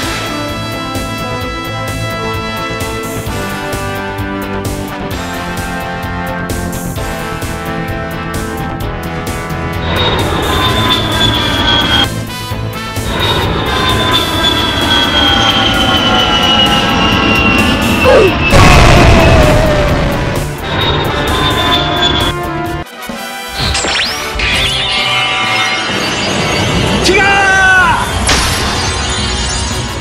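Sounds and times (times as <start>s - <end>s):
background music: 0.0s - 16.4s, 17.0s - 30.0s
jet whine falling in pitch: 9.8s - 12.1s, 13.1s - 22.4s
loud explosion: 13.0s - 22.3s.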